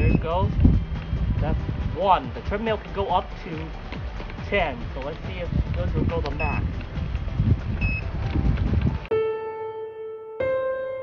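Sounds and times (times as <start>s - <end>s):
short electronic beep: 0.0s - 0.3s
wind buffeting microphone: 0.0s - 9.1s.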